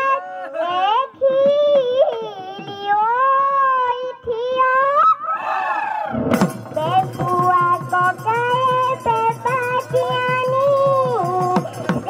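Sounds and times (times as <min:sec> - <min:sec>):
girl singing into a microphone: 0:00.0 - 0:05.3, 0:06.6 - 0:12.0
dhol drum strokes: 0:06.1 - 0:12.0.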